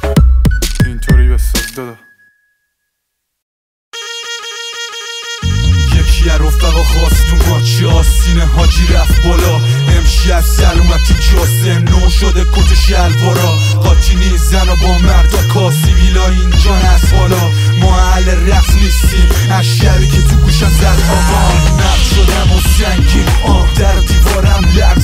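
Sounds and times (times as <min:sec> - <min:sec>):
hip-hop beat with heavy bass: 0:00.0 - 0:02.0, 0:04.0 - 0:25.0
rapped vocals: 0:00.8 - 0:02.0, 0:05.4 - 0:25.0.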